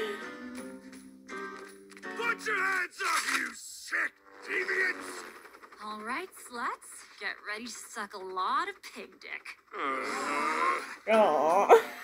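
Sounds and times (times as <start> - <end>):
background music: 0.0 - 5.8.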